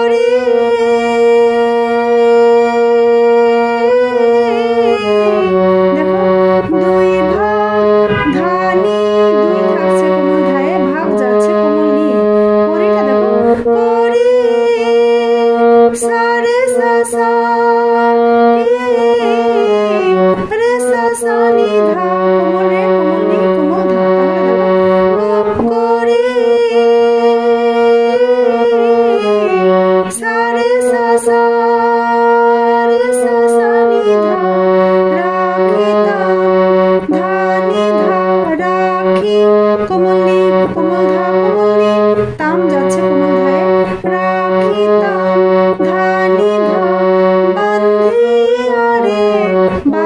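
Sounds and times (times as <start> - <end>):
harmonium melody: 0.0 - 50.0.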